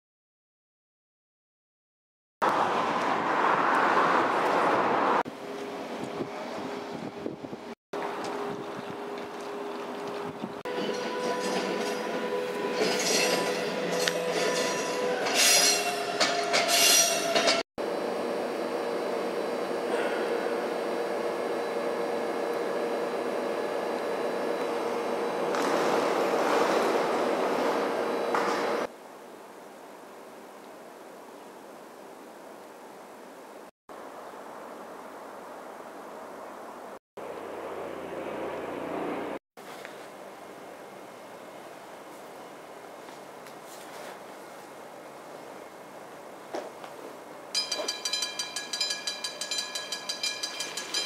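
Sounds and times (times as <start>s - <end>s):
train running drone: 5.3s - 28.9s, 37.2s - 39.4s, 47.6s - 51.0s
train metallic squeal: 10.7s - 17.6s, 47.6s - 51.0s.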